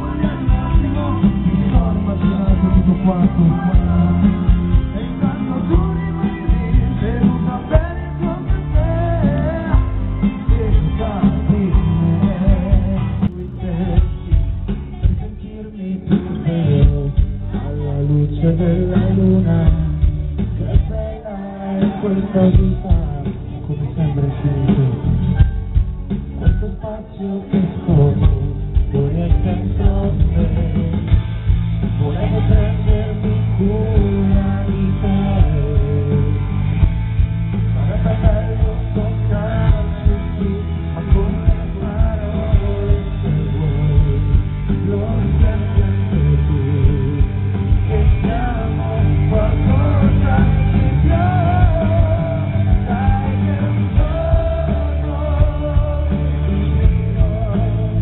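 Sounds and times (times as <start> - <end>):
drum beat: 0.0 - 17.9, 18.9 - 23.6, 24.7 - 58.0
live pop-rock band: 0.0 - 58.0
male lead singer: 0.0 - 58.0.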